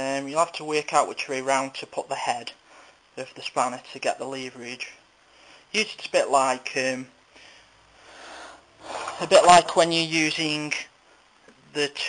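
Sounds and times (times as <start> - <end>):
man breathing: 2.6 - 3.1, 5.2 - 5.7, 7.3 - 9.2.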